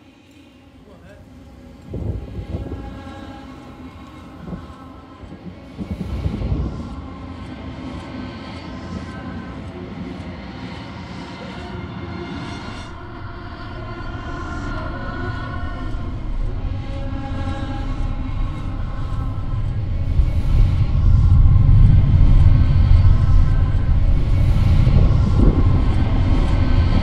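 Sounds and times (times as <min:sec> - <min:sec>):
held ambient tones: 0:00.0 - 0:27.0
low rumbling drone: 0:00.0 - 0:27.0.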